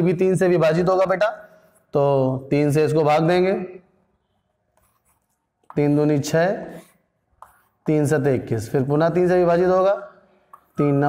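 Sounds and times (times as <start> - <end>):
man speaking: 0.0 - 3.8, 5.7 - 6.9, 7.9 - 11.0
chalk scratching on chalkboard: 4.8 - 8.3.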